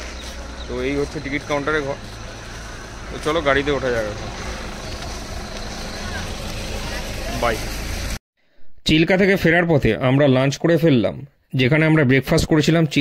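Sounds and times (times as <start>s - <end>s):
voices talking: 0.0s - 8.0s
low engine rumble: 0.0s - 8.2s.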